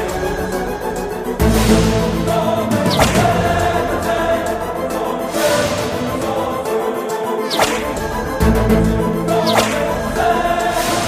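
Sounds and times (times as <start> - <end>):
dramatic background score: 0.0 - 11.0
whip-crack swish effect: 2.9 - 3.9, 7.5 - 8.1, 9.3 - 10.2.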